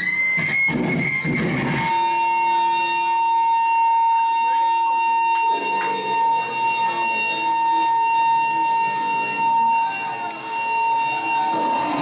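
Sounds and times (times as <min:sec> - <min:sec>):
high-pitched amplifier feedback tone: 0:00.0 - 0:12.0.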